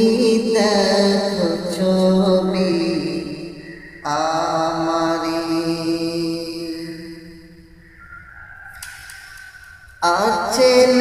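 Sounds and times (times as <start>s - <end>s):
man singing unaccompanied: 0.0s - 7.6s, 10.0s - 11.0s.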